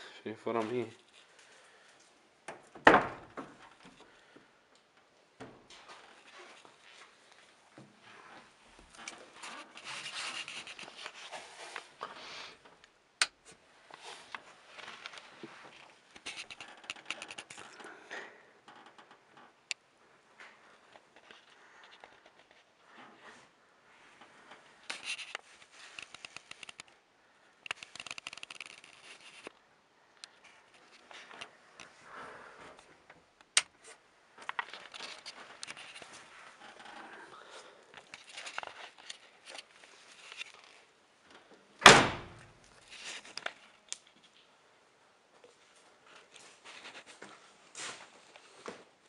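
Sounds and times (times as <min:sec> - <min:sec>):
light clicks and rustling: 0:03.4 - 0:23.3, 0:24.2 - 0:27.0, 0:27.6 - 0:29.6, 0:32.6 - 0:41.6.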